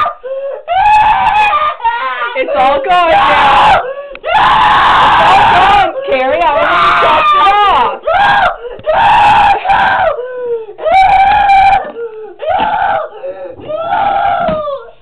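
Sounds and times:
boy screaming and wailing: 0.0 - 15.0.

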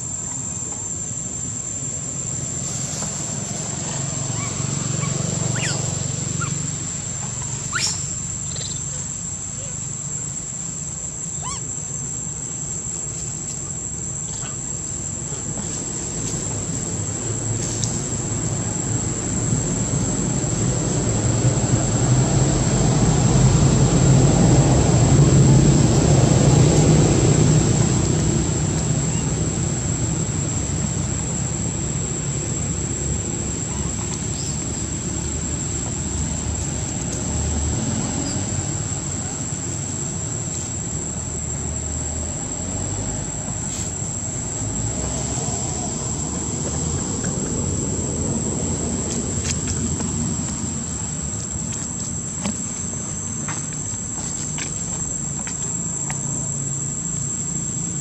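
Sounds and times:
high-pitched insect whine: 0.0 - 58.0.

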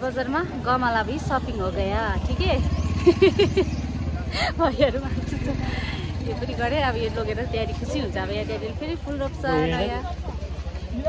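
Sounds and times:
voices talking: 0.0 - 11.0
engine idling: 0.4 - 11.0.

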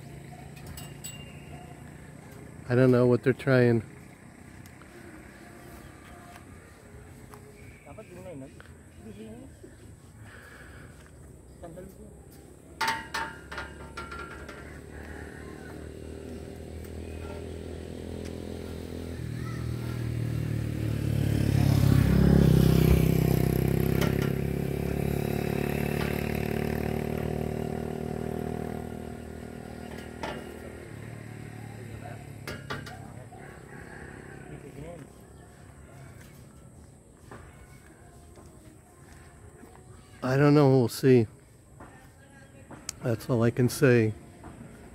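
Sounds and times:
motor vehicle passing by: 0.0 - 40.7
sharp metallic clanks: 0.6 - 1.6, 12.8 - 14.7.

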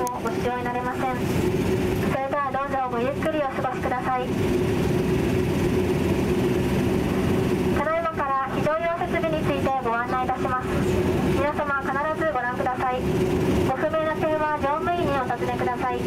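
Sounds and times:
cabin announcement voice: 0.0 - 1.3, 2.0 - 4.4, 7.8 - 16.0
turboprop engines droning: 0.0 - 16.0.

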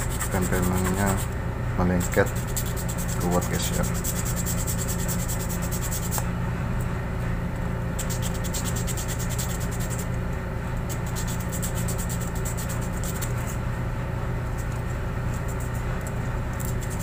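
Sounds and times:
hands rubbing rubber: 0.0 - 1.3
machinery hum: 0.0 - 17.0.

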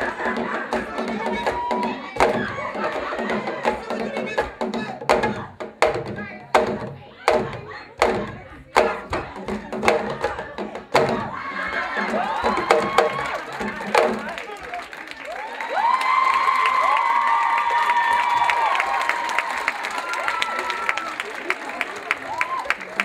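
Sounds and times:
audience cheering: 0.0 - 4.2, 11.0 - 23.0
djembe drum strokes: 0.0 - 14.3
long high shouts: 15.4 - 21.2.

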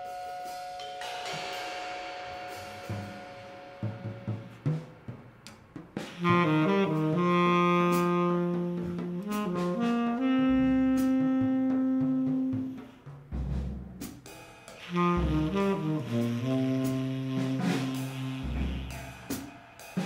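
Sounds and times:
low drum thuds: 2.3 - 14.2, 14.9 - 19.5
tenor saxophone playing free jazz: 6.1 - 13.3, 14.8 - 19.5.

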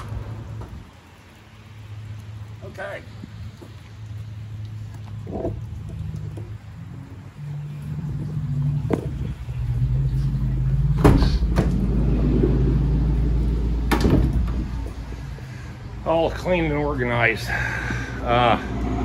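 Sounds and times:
low steady rumble: 0.0 - 19.0
sliding door rolling open: 7.5 - 15.0
door clunks: 11.0 - 11.8, 13.9 - 14.8.

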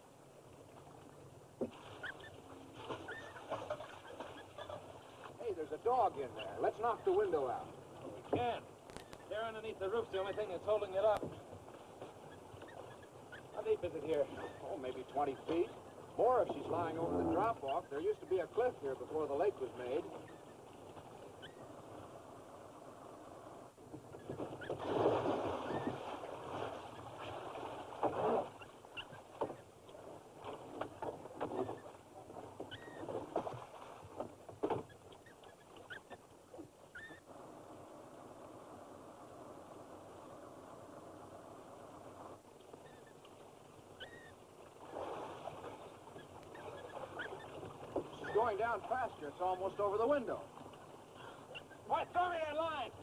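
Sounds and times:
water splashing and sloshing: 0.0 - 53.0
short squeaks: 2.0 - 4.9, 8.9 - 9.3, 12.1 - 13.6, 14.3 - 16.0, 20.2 - 20.6, 21.4 - 21.7, 24.0 - 24.8, 25.6 - 26.0, 28.2 - 29.7, 30.9 - 32.0, 32.6 - 33.4, 34.6 - 37.3, 42.7 - 43.3, 43.9 - 44.4, 45.9 - 48.6, 51.5 - 51.9.

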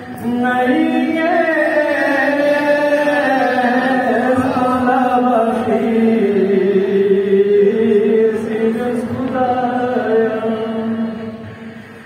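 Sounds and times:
person chanting melodically: 0.0 - 11.8.

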